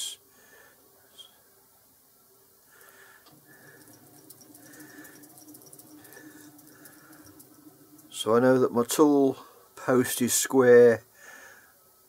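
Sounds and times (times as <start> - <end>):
lathe carriage whirring: 3.2 - 9.5.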